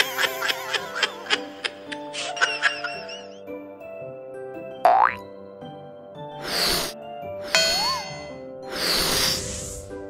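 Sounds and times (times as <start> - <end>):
light children's music: 0.0 - 10.0.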